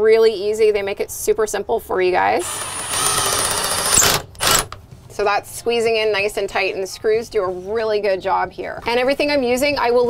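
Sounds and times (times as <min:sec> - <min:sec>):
impact driver hammering screw: 0:02.4 - 0:04.8.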